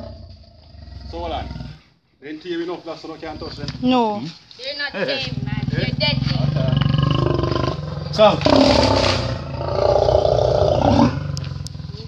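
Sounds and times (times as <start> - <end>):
lion growling: 0.0 - 1.9, 3.2 - 4.1, 5.1 - 12.0.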